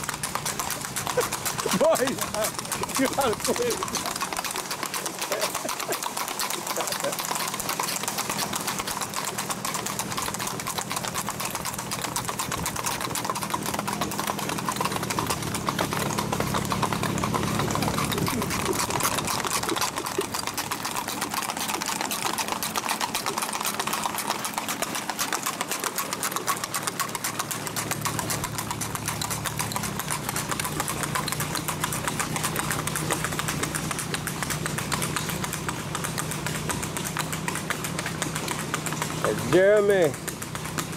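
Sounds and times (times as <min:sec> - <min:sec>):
hooves on asphalt: 0:00.0 - 0:40.9.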